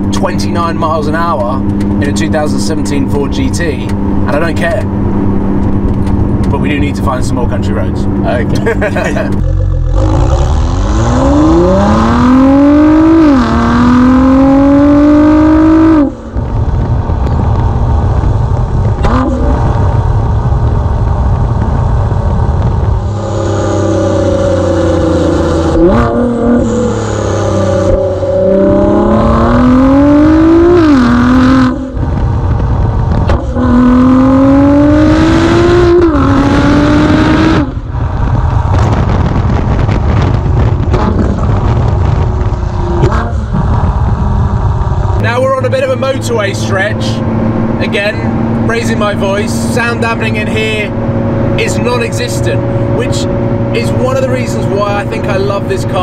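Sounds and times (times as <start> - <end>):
car engine accelerating hard: 0.0 - 56.0.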